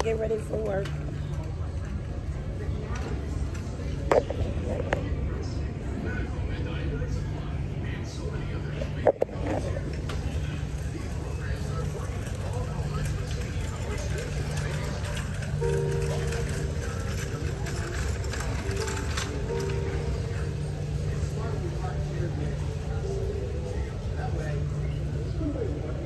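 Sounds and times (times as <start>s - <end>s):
indistinct voices: 0.0s - 26.0s
music with held notes: 14.2s - 23.3s.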